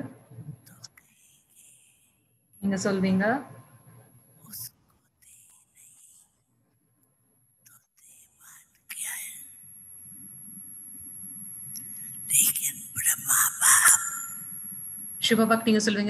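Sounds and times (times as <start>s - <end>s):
steady hiss: 7.7s - 15.6s.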